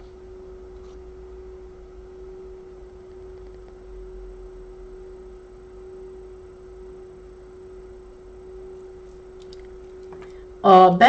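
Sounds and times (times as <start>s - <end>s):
faint low rumble: 0.0s - 11.0s
steady pure tone: 0.0s - 11.0s.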